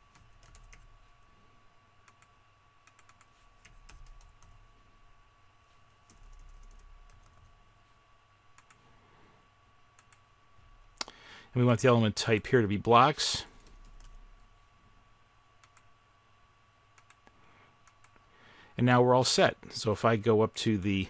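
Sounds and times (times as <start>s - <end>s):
low electrical hum: 0.0s - 21.0s
keyboard typing: 0.1s - 1.0s, 2.0s - 4.6s, 6.0s - 7.5s, 8.6s - 8.8s, 10.0s - 10.2s, 13.6s - 14.2s, 17.8s - 18.2s
mouse clicks: 10.0s - 10.2s.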